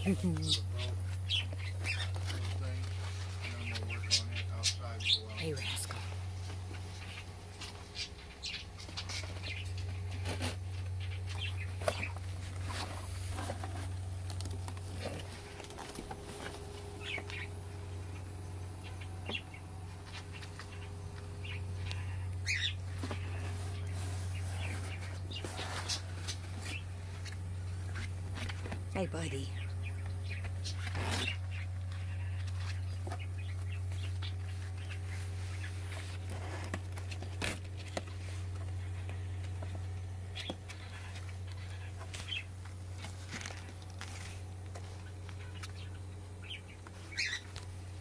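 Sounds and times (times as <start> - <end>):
steady low hum: 0.0 - 48.0
rustles and scrapes of cardboard: 8.8 - 16.9, 22.8 - 28.8, 33.9 - 39.8, 40.4 - 45.7
ferret squeak: 47.1 - 47.5.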